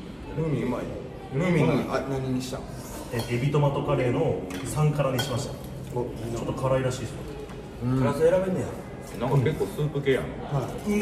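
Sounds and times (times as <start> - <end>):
tableware clinking against bowls: 3.0 - 3.6, 4.4 - 5.9.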